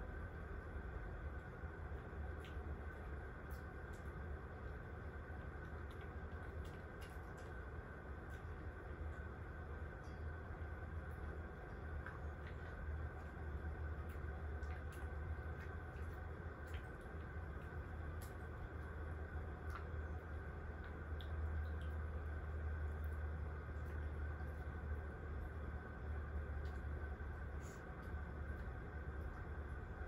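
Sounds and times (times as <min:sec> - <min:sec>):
low hum: 0:00.0 - 0:30.0.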